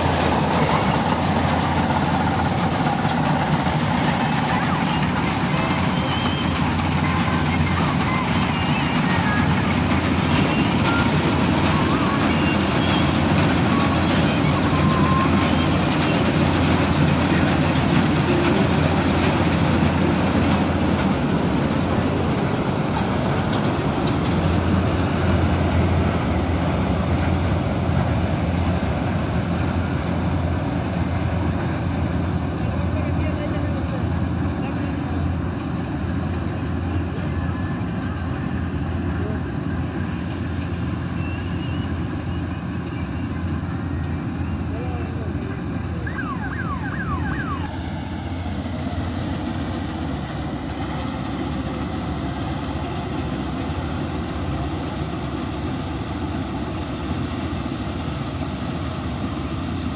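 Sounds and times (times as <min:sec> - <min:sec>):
combine harvester running: 0:00.0 - 0:59.9.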